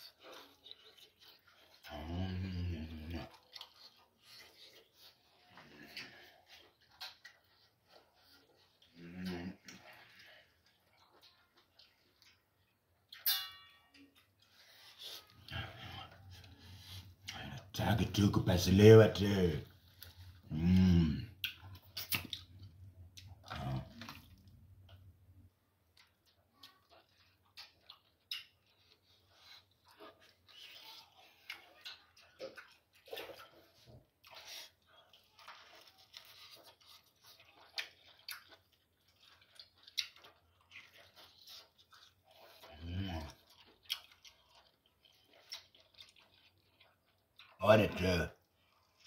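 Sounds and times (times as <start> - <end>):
wet chewing and gnawing: 0.0 - 49.0
wet mouth smacks: 21.4 - 23.3.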